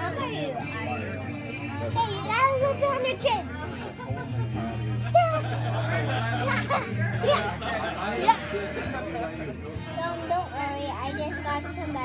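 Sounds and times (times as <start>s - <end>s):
girl's high-pitched wordless voice: 0.0s - 0.6s, 1.8s - 3.6s, 5.1s - 5.5s, 7.2s - 7.4s, 10.0s - 12.0s.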